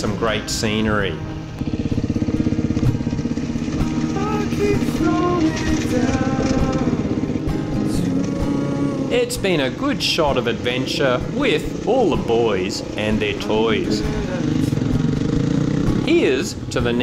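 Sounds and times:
background music: 0.0s - 17.0s
dirt bike engine running: 0.0s - 17.0s.

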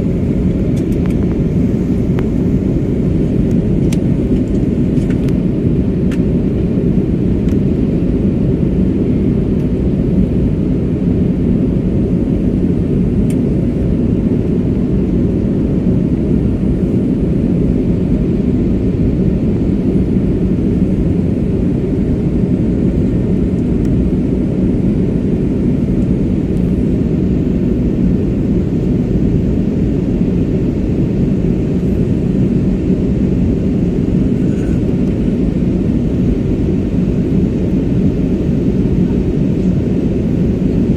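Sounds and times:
aircraft engine and airflow rumble: 0.0s - 40.9s
faint steady hum: 0.0s - 40.9s.

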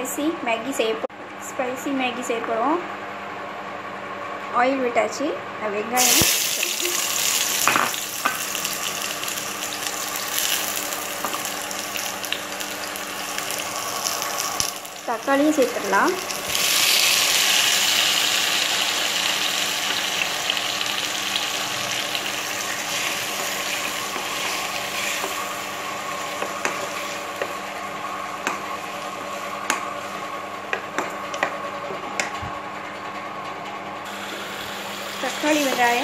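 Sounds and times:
vegetables sizzling in hot oil: 6.0s - 27.7s, 34.1s - 36.0s.

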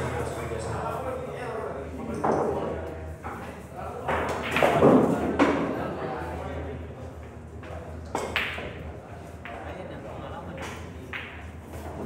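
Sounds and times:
people talking in echoing hall: 0.0s - 12.0s.

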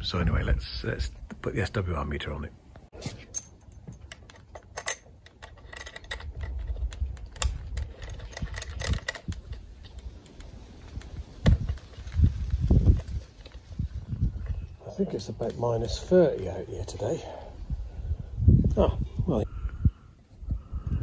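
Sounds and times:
small clicks and rattles: 3.3s - 13.7s.

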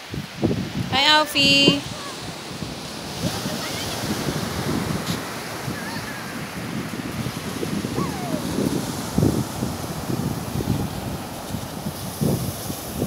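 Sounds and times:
waves breaking on a beach: 0.0s - 13.0s
wind buffeting microphone: 0.0s - 13.0s.

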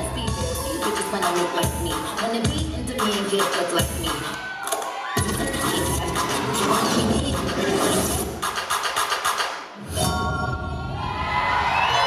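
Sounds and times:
audience cheering and shouting: 0.0s - 7.9s, 10.5s - 12.0s
dance music: 0.0s - 11.0s.

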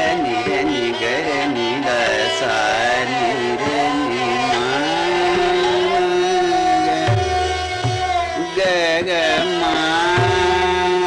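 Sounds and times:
man singing classical vocals: 0.0s - 11.0s.

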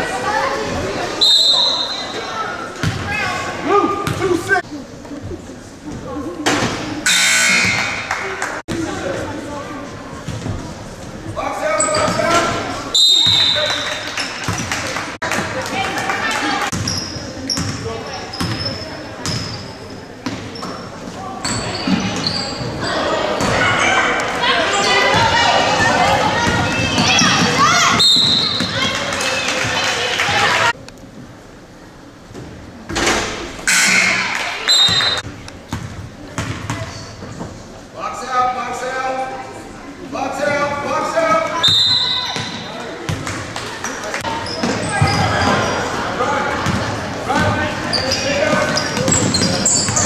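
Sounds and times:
referee's whistle blast: 1.2s - 2.2s, 13.0s - 13.9s, 41.6s - 42.4s.

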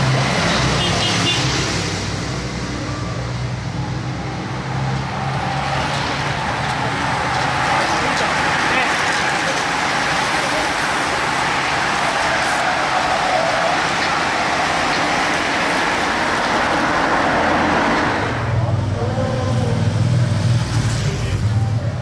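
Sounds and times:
bicycles and cars rushing past: 0.0s - 22.0s
voices: 6.4s - 15.2s, 18.6s - 22.0s.

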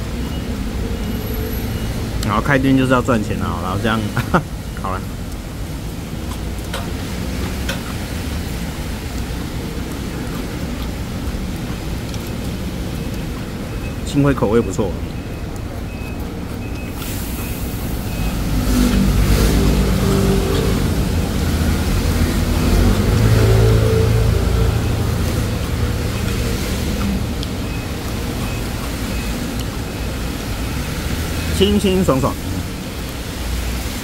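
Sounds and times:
vehicle engine passing by: 17.7s - 29.5s.

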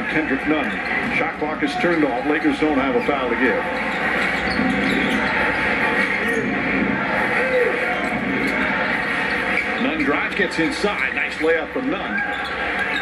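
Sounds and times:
arena crowd noise: 0.0s - 13.0s
sneakers squeaking on court: 1.8s - 5.6s, 12.1s - 13.0s.

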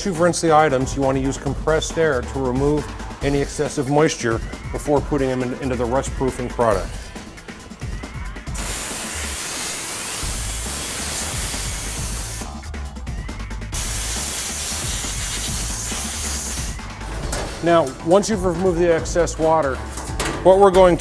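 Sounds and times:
compressed air blow gun hissing: 8.6s - 12.6s, 13.7s - 16.9s.

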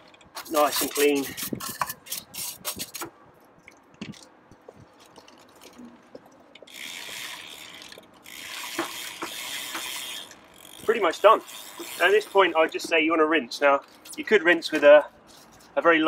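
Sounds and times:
sponge scrubbing bicycle chain: 0.4s - 3.0s, 6.7s - 13.1s
bicycle drivetrain clicking: 4.0s - 13.1s.

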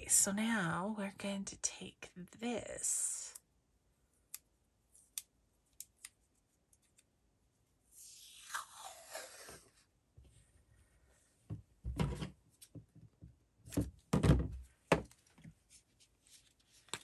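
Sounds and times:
tape unrolling rasp: 8.0s - 9.8s.

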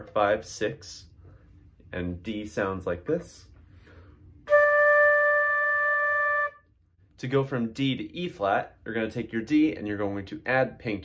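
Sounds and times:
flute holding a note: 4.5s - 6.7s.

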